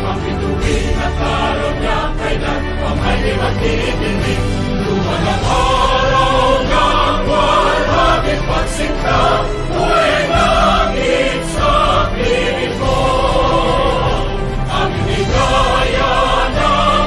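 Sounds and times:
choir singing in unison: 0.0s - 17.0s
instrumental accompaniment: 0.0s - 17.0s.

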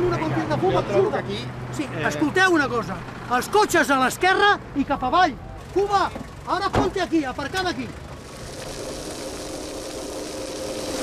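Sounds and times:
faint engine hum: 0.0s - 11.0s
brush fire rushing hiss: 8.1s - 11.0s.

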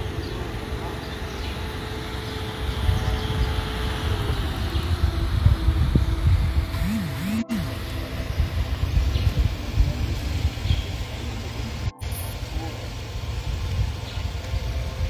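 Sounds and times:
faint steady hum: 0.0s - 15.0s
wind rumble on microphone: 0.0s - 15.0s.

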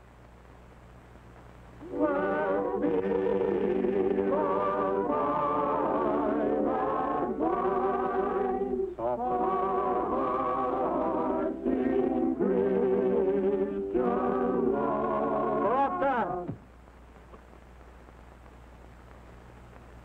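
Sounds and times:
choir singing a hymn: 1.8s - 16.5s
organ accompaniment: 1.8s - 16.6s.

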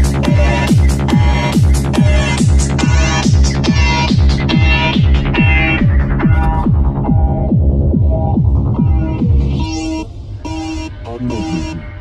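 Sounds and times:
layered synths: 0.0s - 12.0s.

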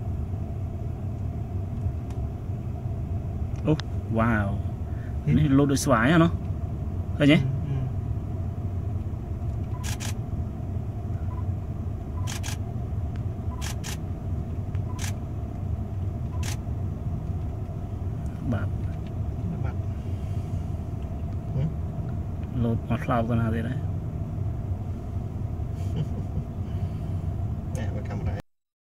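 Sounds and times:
steady low rumble: 0.0s - 28.4s.

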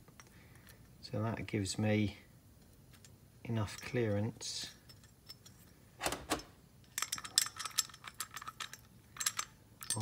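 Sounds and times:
metal parts clinking on workbench: 4.7s - 10.0s.

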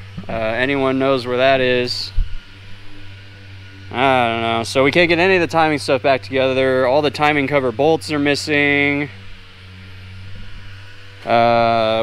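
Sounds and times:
steady low hum: 0.0s - 12.0s
man talking: 0.3s - 2.2s, 3.9s - 9.2s, 11.2s - 12.0s.

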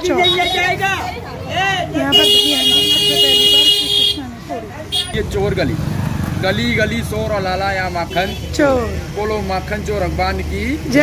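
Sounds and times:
auto-rickshaw horn blast: 2.1s - 4.2s.

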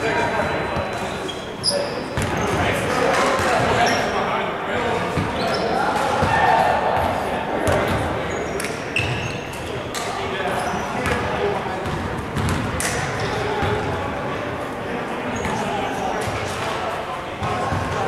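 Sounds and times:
players' voices echoing: 0.0s - 18.0s.

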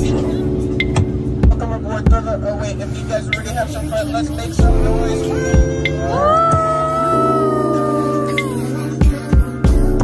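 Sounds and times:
music with low notes: 0.0s - 10.0s.

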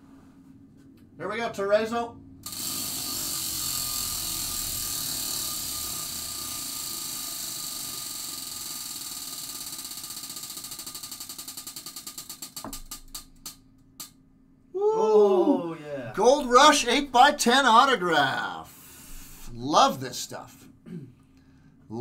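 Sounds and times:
prize wheel pointer ticking: 2.4s - 13.6s.

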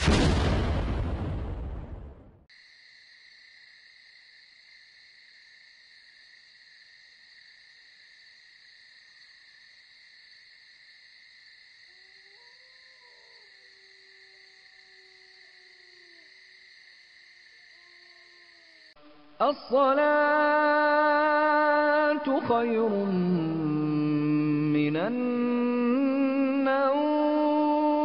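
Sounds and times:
insects chirping: 2.5s - 28.0s
distant man chanting: 19.4s - 27.8s.

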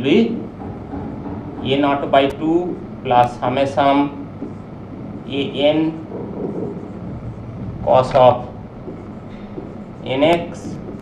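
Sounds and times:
low room hum: 0.0s - 11.0s
man speaking: 5.2s - 6.1s, 7.8s - 8.6s, 10.0s - 10.8s.

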